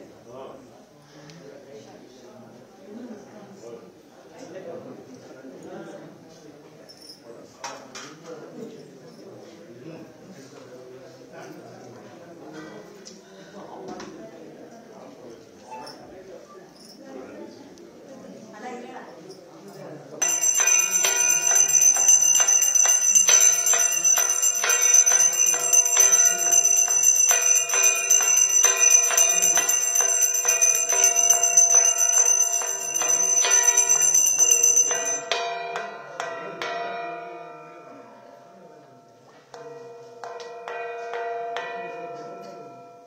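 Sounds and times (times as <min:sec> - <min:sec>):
hand bell ringing rapidly: 0:20.2 - 0:35.6.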